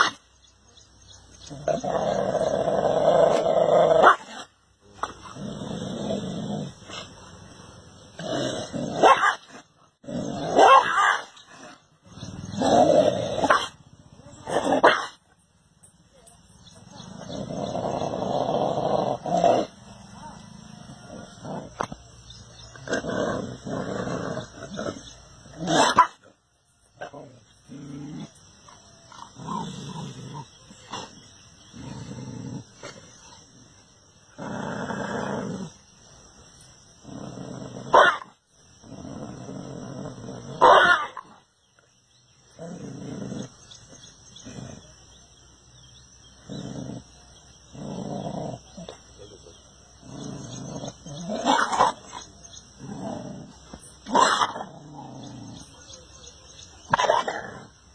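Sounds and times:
dogs growling and barking: 0:00.0 - 0:57.9.

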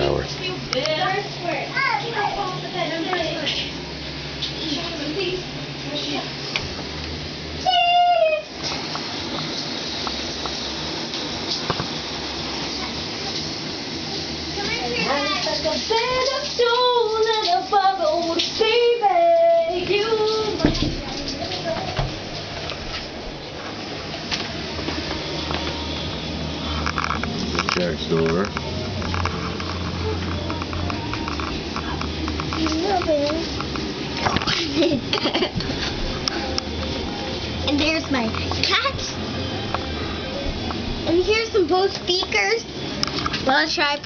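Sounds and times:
shower water running: 0:00.0 - 0:44.0
steady low hum: 0:00.0 - 0:44.0.

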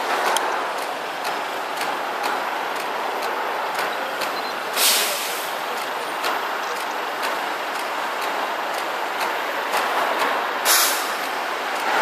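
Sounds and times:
city road traffic: 0:00.0 - 0:12.0
faint ticking: 0:00.3 - 0:04.8, 0:05.5 - 0:10.4
air brake hiss: 0:04.8 - 0:05.6, 0:10.6 - 0:11.3.

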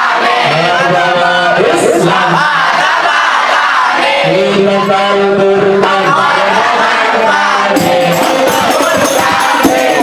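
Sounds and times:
men singing through loudspeakers: 0:00.0 - 0:10.0.

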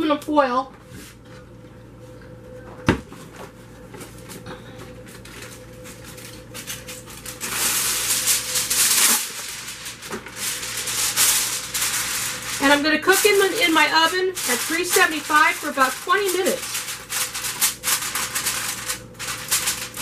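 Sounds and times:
aluminum foil crinkling: 0:05.1 - 0:20.0.

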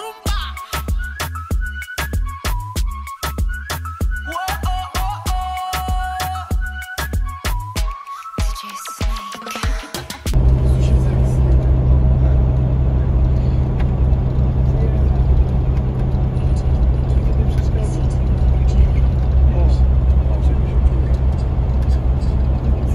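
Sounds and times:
vehicle engine droning: 0:10.3 - 0:22.9
people talking: 0:10.4 - 0:13.2, 0:14.6 - 0:22.9.

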